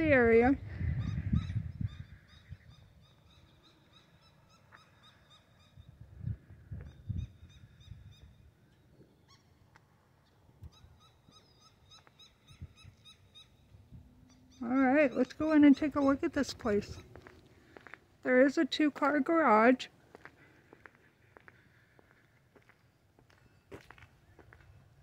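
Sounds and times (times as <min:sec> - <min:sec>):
faint bird calls: 0:00.6 - 0:17.8.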